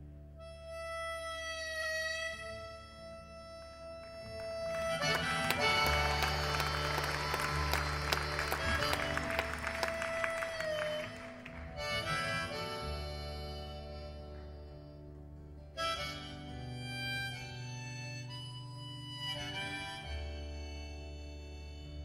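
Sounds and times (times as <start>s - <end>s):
harmonica holding a long note: 0.0s - 22.0s.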